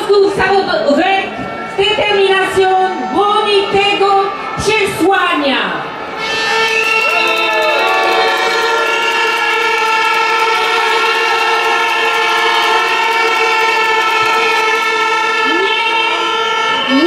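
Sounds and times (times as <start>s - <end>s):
crowd blowing horns: 0.0s - 17.0s.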